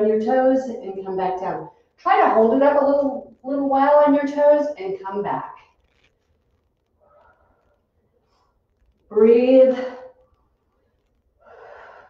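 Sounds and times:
woman breathing in: 0:11.4 - 0:12.0.

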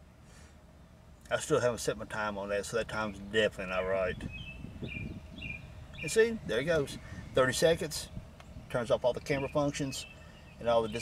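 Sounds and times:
faint low outdoor hum: 0:00.0 - 0:11.0
bird chirping: 0:03.0 - 0:11.0.

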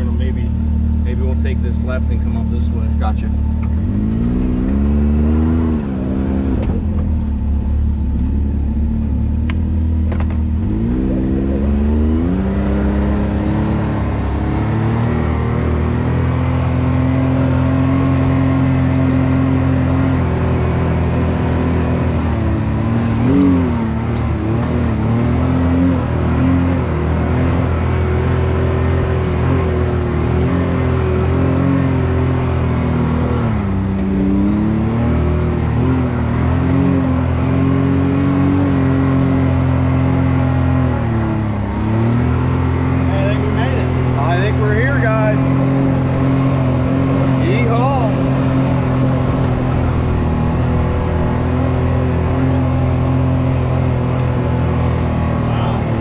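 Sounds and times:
off-road vehicle engine running: 0:00.0 - 0:56.0.

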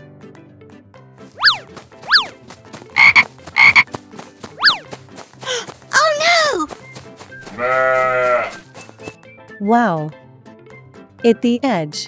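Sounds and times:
frog croaks: 0:03.0 - 0:03.9.

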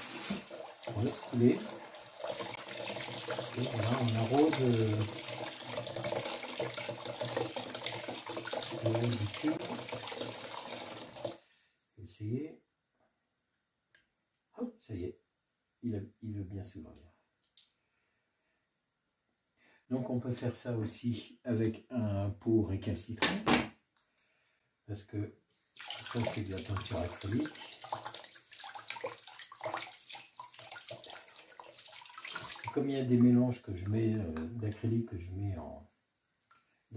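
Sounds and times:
tap water running into sink: 0:00.0 - 0:11.4, 0:25.8 - 0:32.8.

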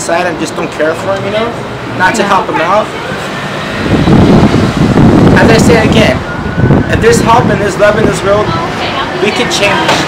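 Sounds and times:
loud low rumbling: 0:02.8 - 0:09.2.

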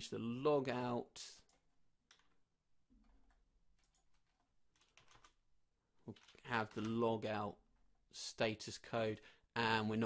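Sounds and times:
typing on computer keyboard: 0:01.4 - 0:05.4, 0:06.1 - 0:07.0.

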